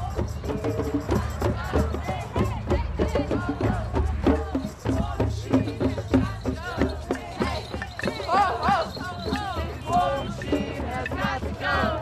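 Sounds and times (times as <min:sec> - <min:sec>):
crowd voices: 0:00.0 - 0:12.0
drums beaten in quick rhythm: 0:00.0 - 0:12.0.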